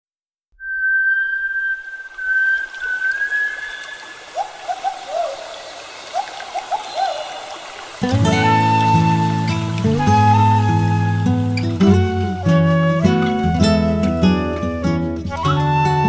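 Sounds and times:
bird-like whistled calls: 0.6 - 7.5, 8.2 - 16.0
running water trickling: 0.7 - 16.0.

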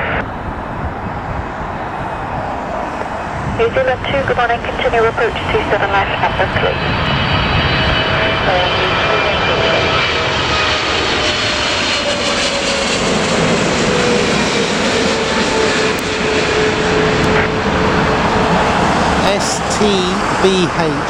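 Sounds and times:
jet engine whine falling: 0.0 - 21.0
jet roar overhead: 0.0 - 21.0.

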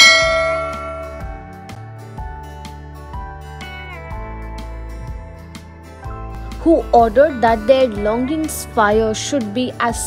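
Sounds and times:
bell ding: 0.0 - 1.7
soft guitar music: 0.0 - 10.0.

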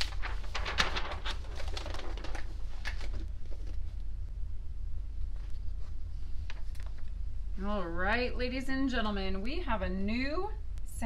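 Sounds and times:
paper pages rustling: 0.0 - 4.1
steady low hum: 0.0 - 11.0.

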